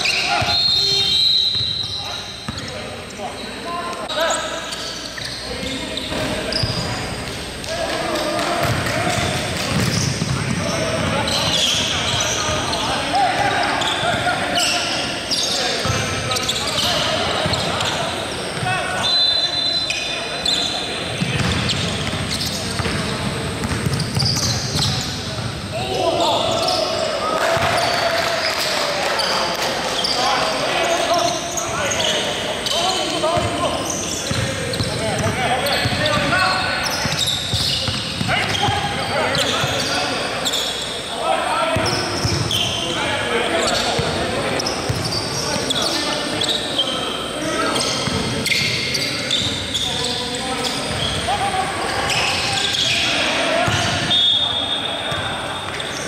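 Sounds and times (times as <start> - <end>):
players' voices: 0.0 - 56.0
sneakers squeaking: 0.0 - 56.0
basketball bouncing on hardwood: 9.7 - 10.3.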